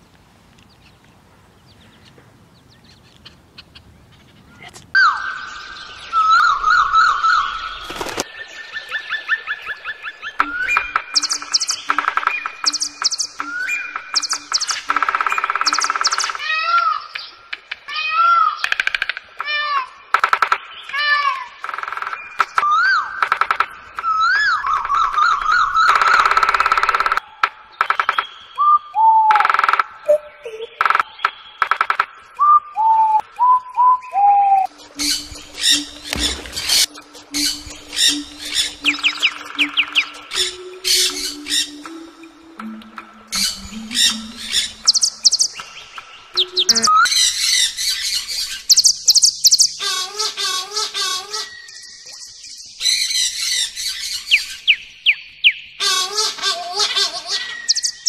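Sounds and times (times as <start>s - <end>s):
rapid high warbling trills: 9.3s - 16.4s, 34.7s - 47.1s
fast high bird chirps: 10.3s - 16.4s, 43.4s - 49.9s
low repeated hoots: 34.4s - 47.1s.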